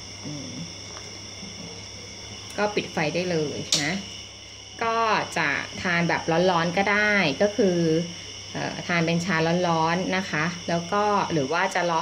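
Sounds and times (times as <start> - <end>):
faint low hum: 0.0 - 12.0
high-pitched whine: 0.0 - 12.0.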